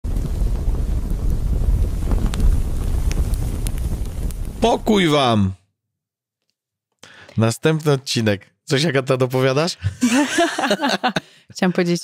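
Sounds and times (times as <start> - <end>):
low rumble with crackles: 0.0 - 5.1.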